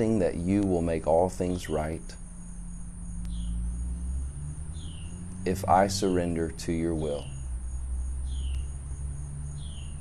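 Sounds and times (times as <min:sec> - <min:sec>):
insects droning: 0:00.0 - 0:10.0
low steady rumble: 0:00.0 - 0:10.0.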